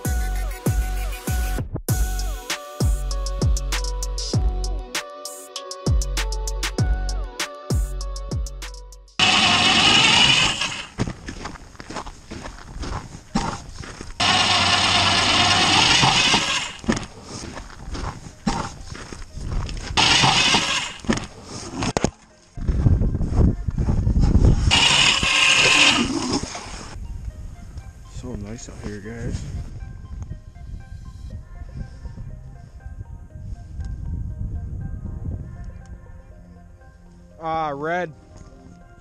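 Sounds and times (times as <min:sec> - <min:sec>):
power ice auger drilling: 0:09.2 - 0:11.0, 0:14.2 - 0:17.1, 0:20.0 - 0:22.0, 0:24.6 - 0:27.0.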